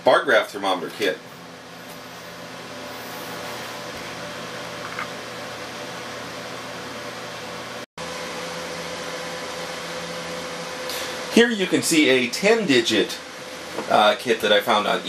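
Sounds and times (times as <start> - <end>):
faint electrical hum: 0.0 - 15.0.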